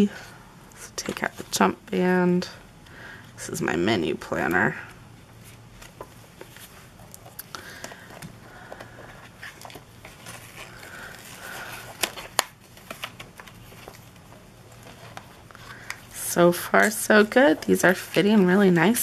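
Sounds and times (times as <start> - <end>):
paper rustling and crinkling: 5.4 - 19.0.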